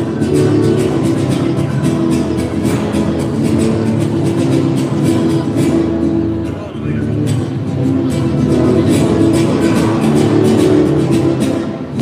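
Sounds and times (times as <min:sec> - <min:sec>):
guitar music: 0:00.0 - 0:12.0.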